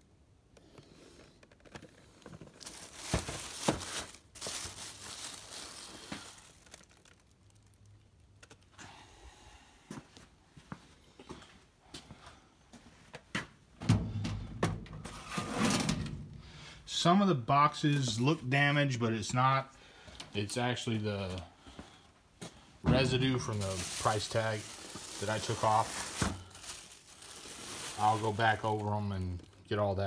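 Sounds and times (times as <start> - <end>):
plastic bag rustling: 1.5 - 8.7, 22.9 - 30.0.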